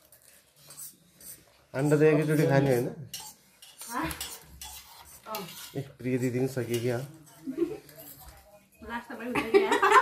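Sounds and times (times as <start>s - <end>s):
spoons clinking on steel bowl: 0.6s - 5.8s, 6.6s - 8.8s.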